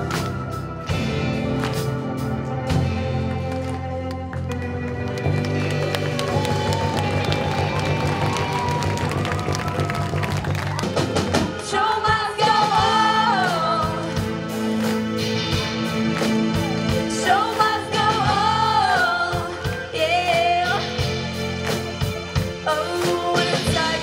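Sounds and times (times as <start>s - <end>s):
live rock band playing: 0.0s - 24.0s
person singing: 16.6s - 21.2s, 22.6s - 24.0s.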